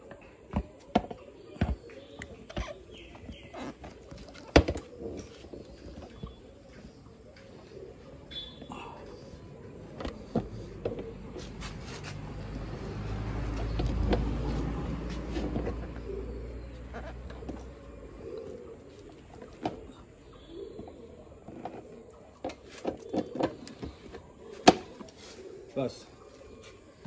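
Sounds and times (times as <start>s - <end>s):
bird cooing: 0.0s - 27.0s.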